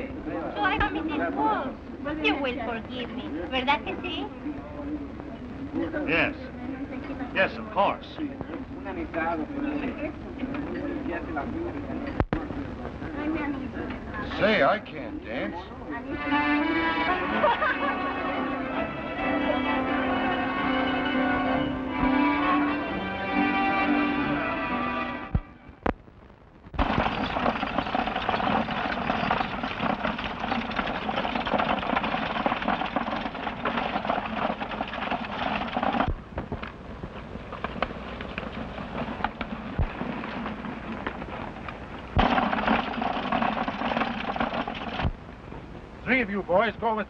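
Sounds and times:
stagecoach rolling: 9.1s - 25.2s, 26.8s - 47.0s
galloping horses' hooves: 26.8s - 45.8s.

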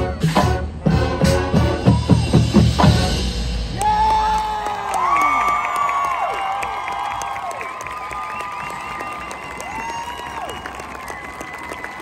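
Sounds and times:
crowd cheering and clapping: 3.7s - 12.0s.

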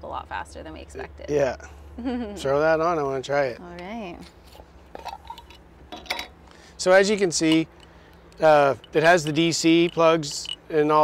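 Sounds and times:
steady low hum: 0.0s - 11.0s
knife clinking on plate and jar: 7.4s - 10.7s.

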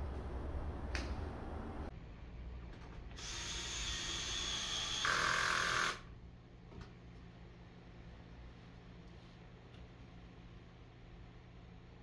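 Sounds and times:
cordless drill motor whining: 3.2s - 6.0s.

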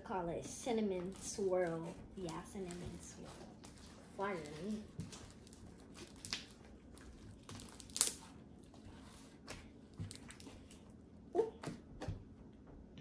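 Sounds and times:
slime crinkling and crackling: 0.2s - 11.0s.

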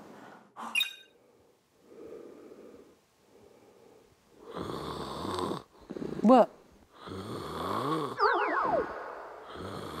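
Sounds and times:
man snoring: 4.5s - 5.7s, 7.0s - 8.2s.

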